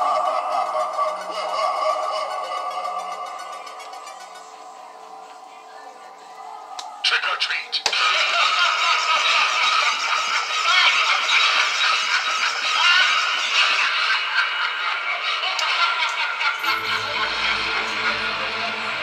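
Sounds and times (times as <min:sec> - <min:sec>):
eerie music and effects: 0:00.0 - 0:07.0, 0:11.3 - 0:19.0
deep droning music: 0:16.6 - 0:19.0.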